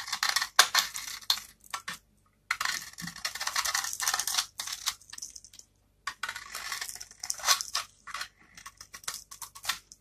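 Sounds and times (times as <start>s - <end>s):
knife blade shaving soap: 0.0s - 10.0s.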